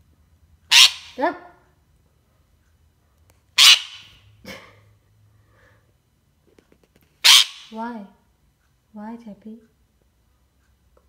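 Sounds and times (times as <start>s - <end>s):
parakeet harsh calls: 0.7s - 1.2s, 3.6s - 4.3s, 7.2s - 7.8s.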